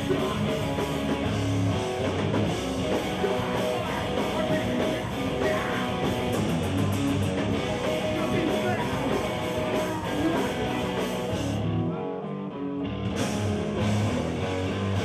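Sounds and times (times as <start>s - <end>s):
drum kit with cymbals: 0.0s - 11.6s, 13.1s - 15.0s
distorted electric guitars: 0.0s - 15.0s.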